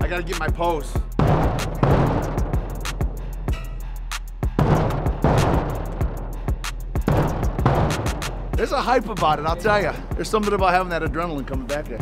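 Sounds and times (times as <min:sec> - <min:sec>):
music track with steady beat: 0:00.0 - 0:12.0
bass drum booms with reverberation: 0:01.0 - 0:03.2, 0:04.5 - 0:08.7.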